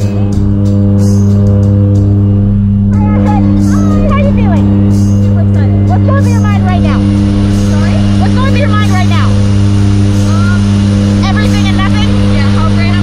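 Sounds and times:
people talking: 0.0 - 0.5, 2.9 - 9.5, 10.2 - 13.0
airplane engine and propeller drone: 0.0 - 13.0.

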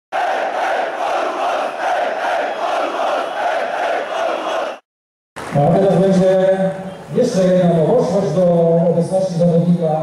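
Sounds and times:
large crowd shouting: 0.2 - 4.8.

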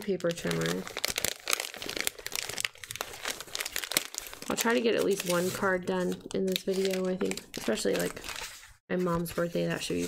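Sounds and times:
paper and packaging rustling: 0.1 - 10.0.

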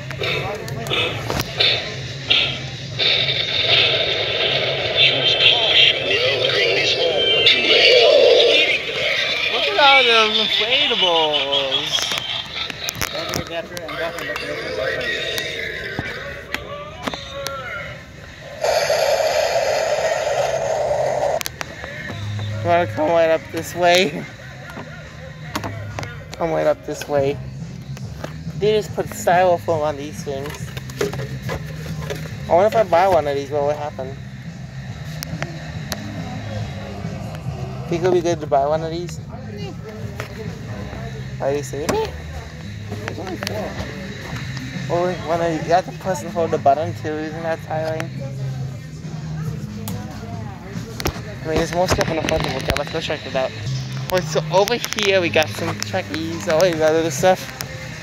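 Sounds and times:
shop floor background hum: 0.0 - 58.0
distorted demonic sing-song voice: 1.0 - 10.5, 14.4 - 16.7
crackling hiss from small speaker: 18.2 - 21.8.

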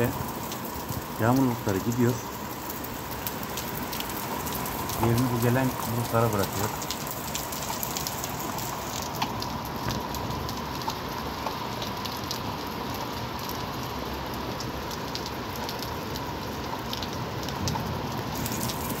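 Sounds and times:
heavy rain hissing: 0.0 - 11.8, 17.2 - 19.0
raindrops ticking on surfaces: 0.0 - 19.0.

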